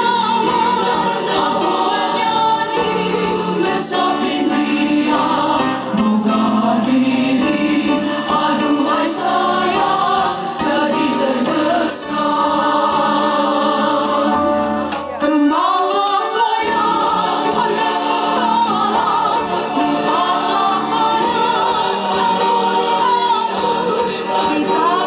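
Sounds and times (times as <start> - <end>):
women's choir singing: 0.0 - 25.0.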